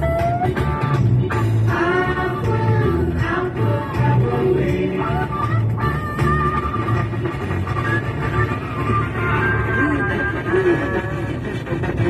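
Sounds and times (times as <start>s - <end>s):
pop-rock song on car radio: 0.0s - 12.0s.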